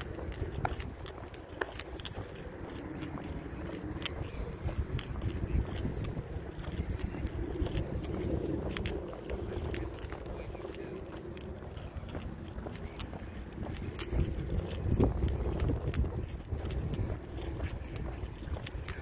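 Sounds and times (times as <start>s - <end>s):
clicks and clinks from handling: 0.0s - 19.0s
wind rumbling on microphone: 0.0s - 19.0s.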